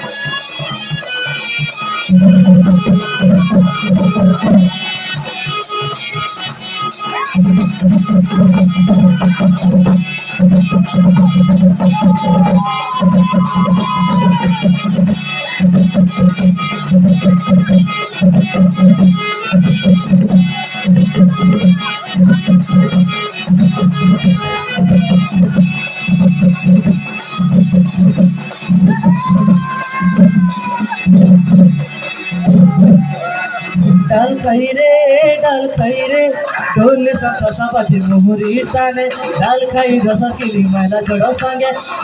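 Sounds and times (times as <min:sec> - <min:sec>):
drums beating fast: 0:00.0 - 0:42.0
held melody line: 0:00.0 - 0:42.0.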